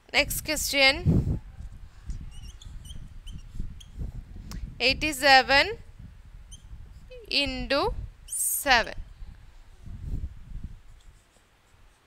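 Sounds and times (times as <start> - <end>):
marker writing on a whiteboard: 2.3 - 3.9.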